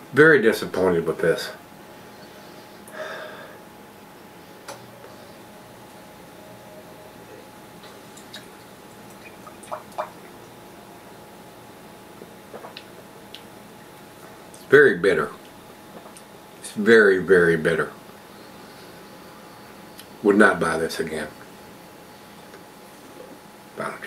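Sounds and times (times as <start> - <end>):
soft breath out: 2.4 - 3.6.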